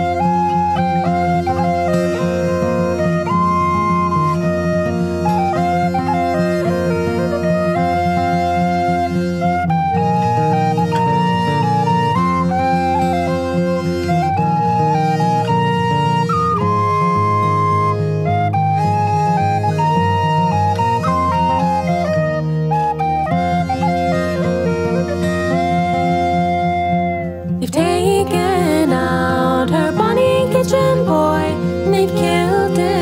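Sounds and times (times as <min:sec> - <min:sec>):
ornamented wind instrument melody: 0:00.0 - 0:33.0.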